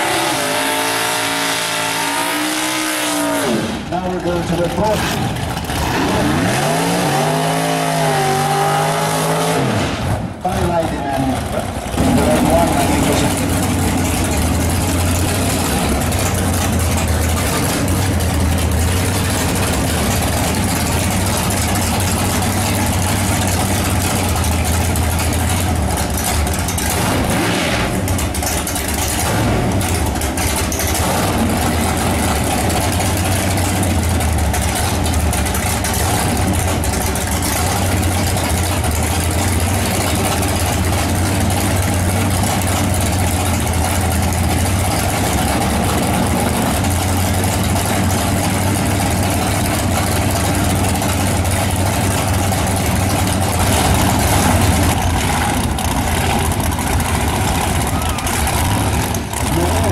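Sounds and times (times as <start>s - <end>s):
race car engine idling loudly: 0.0s - 9.4s, 10.0s - 59.9s.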